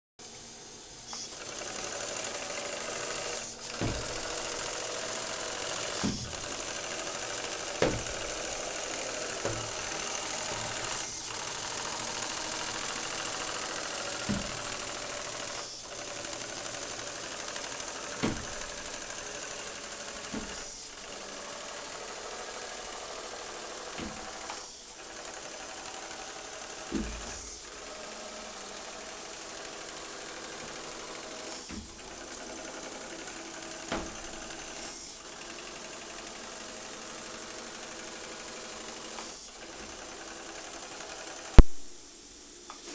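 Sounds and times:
steam hiss: 0.2s - 42.9s
steam engine mechanical chatter: 1.0s - 41.6s.

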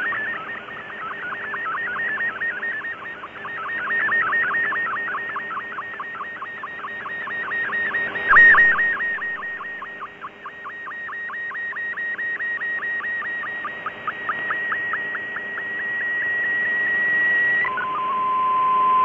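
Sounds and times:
warbling data tone: 1.4s - 19.0s.

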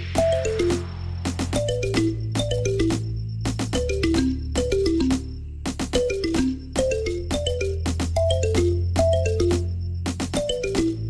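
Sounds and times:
bright melody with bass and beat: 0.0s - 11.0s.

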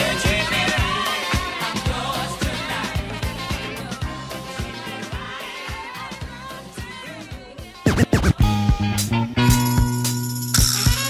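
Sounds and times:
funk music with bass and drums: 0.0s - 11.0s
vinyl record scratching: 7.8s - 8.6s.

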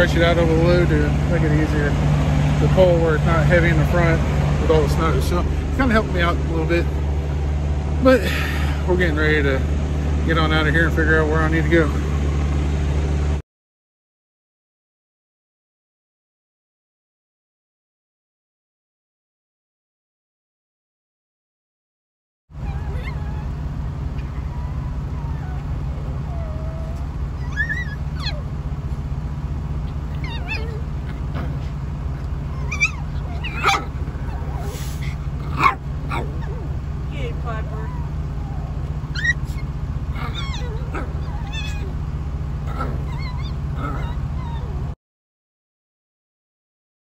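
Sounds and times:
puppy whimpering and yipping: 22.6s - 28.6s, 29.8s - 45.0s.

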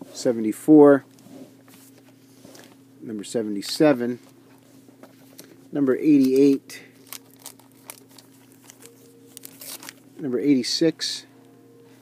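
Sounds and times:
plastic bags crinkling: 6.2s - 10.1s.

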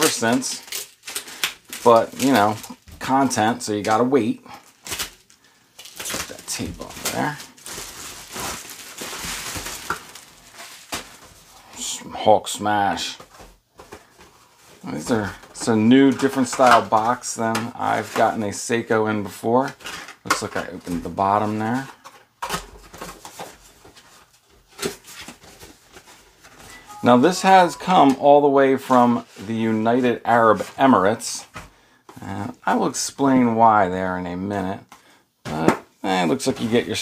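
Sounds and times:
bubble wrap crinkling: 0.0s - 11.8s.

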